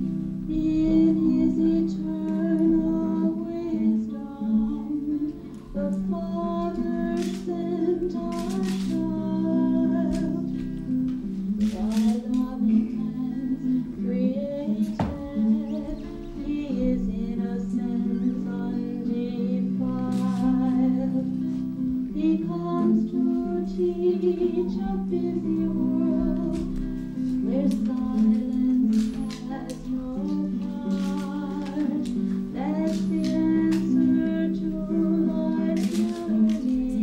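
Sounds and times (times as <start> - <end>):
acoustic guitar: 0.0 - 37.0
woman singing: 0.5 - 37.0.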